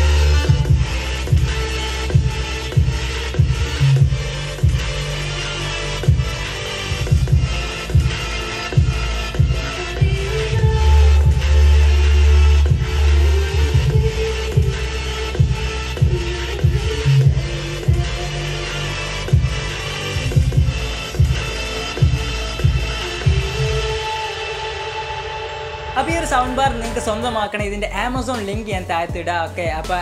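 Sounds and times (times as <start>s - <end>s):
electronic dance music: 0.0s - 30.0s.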